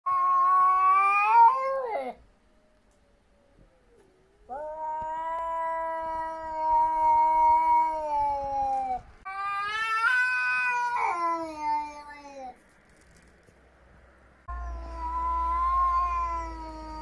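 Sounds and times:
cat yowling: 0:00.1 - 0:02.2, 0:04.5 - 0:12.6, 0:14.5 - 0:17.0.

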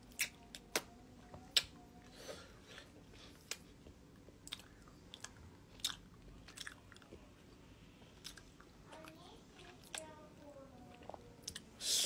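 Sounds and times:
person chewing crunchy snack: 0:04.3 - 0:07.1.

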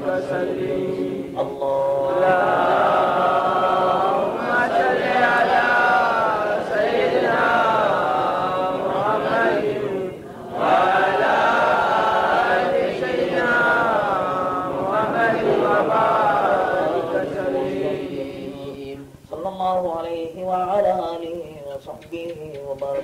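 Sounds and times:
person chanting devotional verse: 0:00.0 - 0:23.0.

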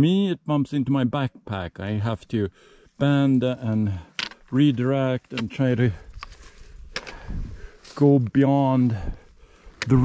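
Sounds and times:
footsteps on rocky trail: 0:04.2 - 0:10.0.

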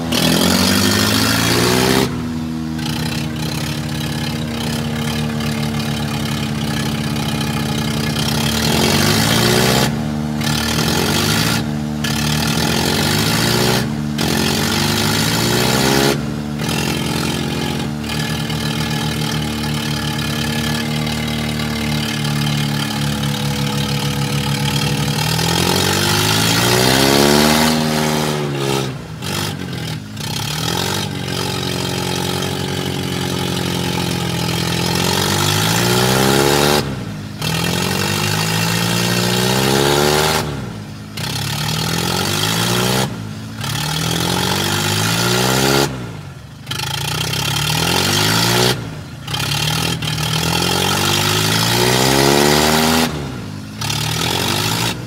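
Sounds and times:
tractor diesel engine revving: 0:00.0 - 0:55.0.

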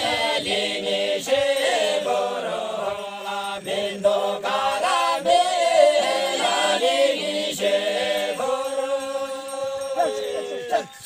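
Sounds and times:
group singing in unison: 0:00.0 - 0:11.0.

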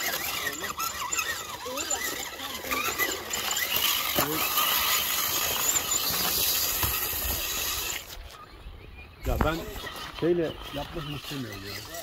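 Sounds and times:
faint voices: 0:00.0 - 0:12.0
toy car motor whining: 0:00.0 - 0:12.0.

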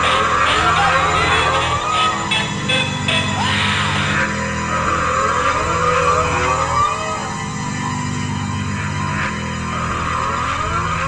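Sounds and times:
sliding lead guitar notes: 0:00.0 - 0:07.7
heavy low bass line: 0:00.0 - 0:11.0.

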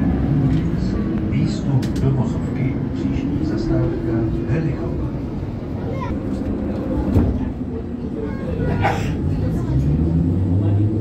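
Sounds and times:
tram motor and wheel noise: 0:00.0 - 0:11.0.

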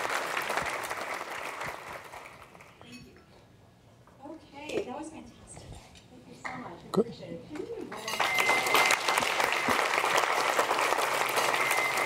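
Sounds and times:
audience applause: 0:00.0 - 0:02.7, 0:08.2 - 0:12.0.

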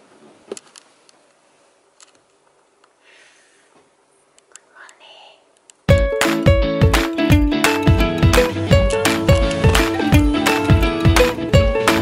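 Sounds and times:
person whispering: 0:04.6 - 0:05.6.

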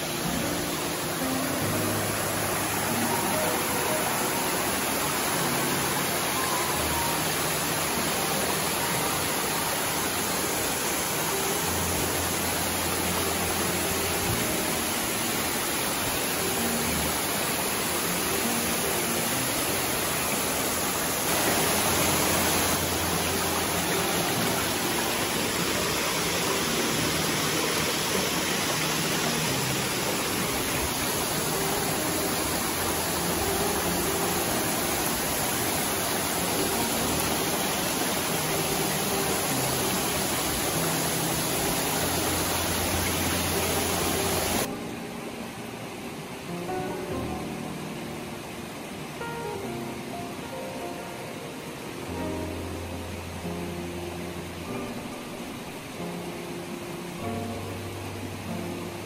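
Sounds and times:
small waterfall rushing: 0:00.0 - 0:59.0
stream running over rocks: 0:00.0 - 0:59.0.

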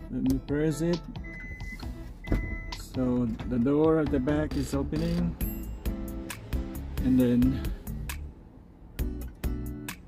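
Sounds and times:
high warning beeps: 0:01.2 - 0:03.0.

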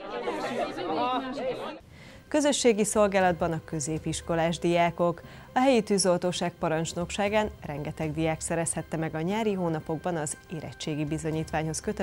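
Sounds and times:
teenagers chattering and calling out: 0:00.0 - 0:01.8.

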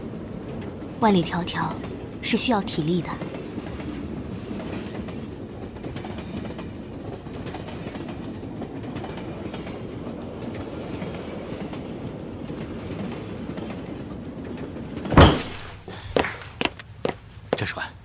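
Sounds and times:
train running rumble: 0:00.0 - 0:15.3
wheels clacking over rail joints: 0:00.0 - 0:17.0.

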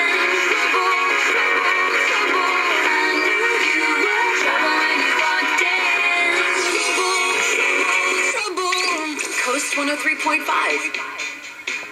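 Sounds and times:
pop song on small radio speaker: 0:00.0 - 0:11.9.

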